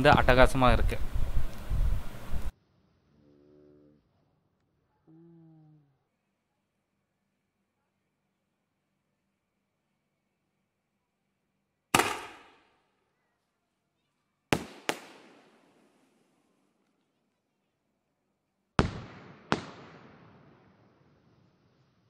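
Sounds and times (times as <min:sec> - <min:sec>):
firework bangs echoing: 0:12.0 - 0:12.6, 0:14.5 - 0:15.9, 0:18.8 - 0:20.8.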